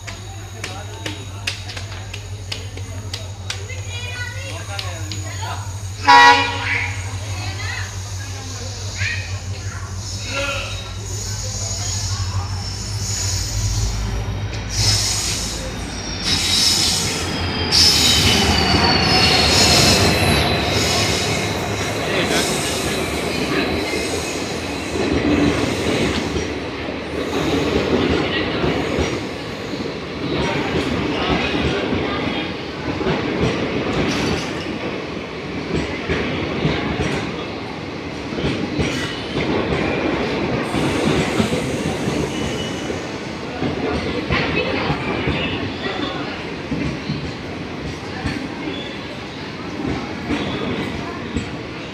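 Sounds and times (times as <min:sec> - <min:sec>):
train coaches rumbling past: 0:00.0 - 0:51.9
train wheel squeal: 0:00.1 - 0:33.2, 0:38.4 - 0:51.9.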